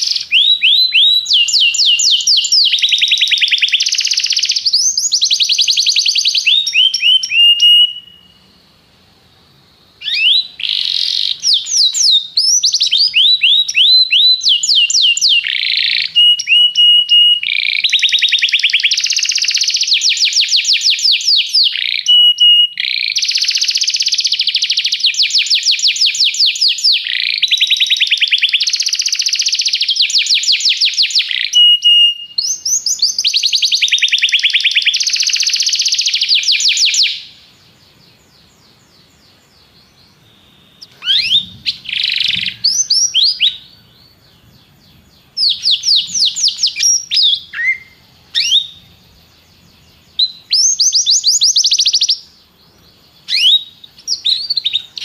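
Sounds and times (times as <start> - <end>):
canary whistled notes: 0.0 - 8.4, 40.6 - 43.6
canary singing trilled song: 0.0 - 8.6, 10.0 - 55.0.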